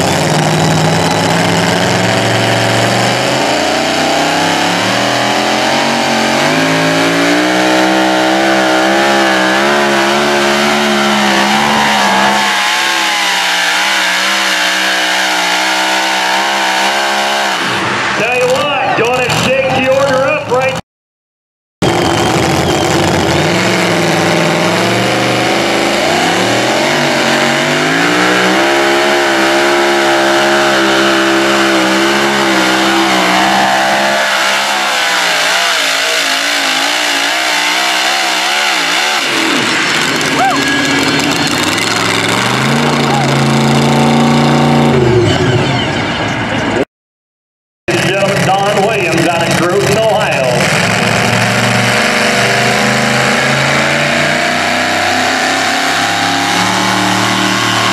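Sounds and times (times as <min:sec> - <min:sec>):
truck engines at full throttle: 0:00.0 - 0:20.8, 0:21.8 - 0:46.8, 0:47.9 - 0:57.9.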